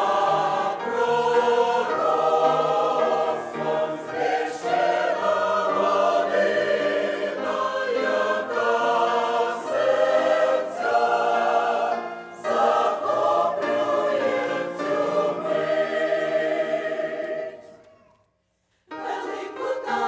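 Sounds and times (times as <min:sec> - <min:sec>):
mixed choir singing: 0:00.0 - 0:18.1, 0:18.9 - 0:20.0.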